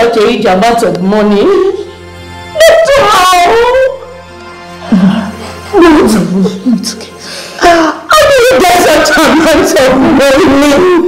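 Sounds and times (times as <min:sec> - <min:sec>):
soft background music: 0:00.0 - 0:11.0
woman crying wail: 0:07.6 - 0:11.0.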